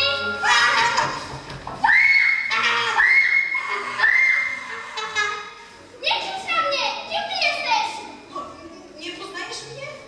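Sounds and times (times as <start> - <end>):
high-pitched squeals: 0.0 - 5.6.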